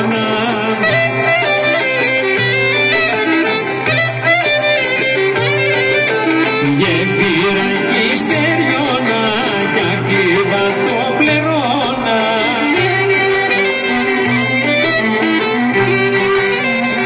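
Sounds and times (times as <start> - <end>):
folk dance band playing: 0.0 - 17.0.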